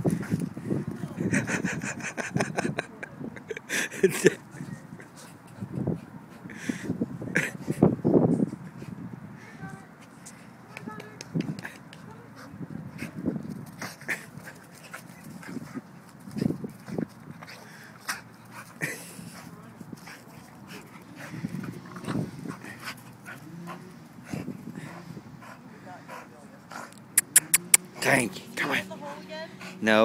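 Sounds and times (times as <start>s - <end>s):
dog making short sounds: 27.2s - 27.8s.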